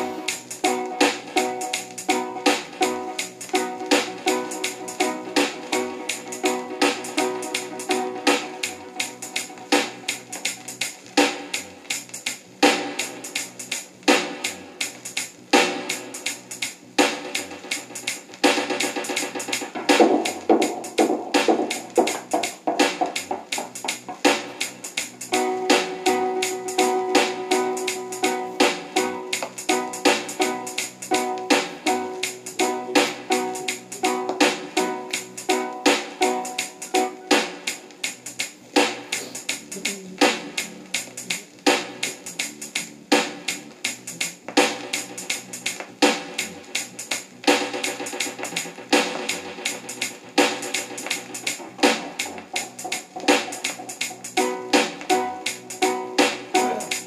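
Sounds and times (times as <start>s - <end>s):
keyboard chords: 0.0s - 11.6s, 18.6s - 42.1s, 47.6s - 57.0s
reggae dub record playing: 0.0s - 57.0s
steady drum beat: 0.0s - 57.0s.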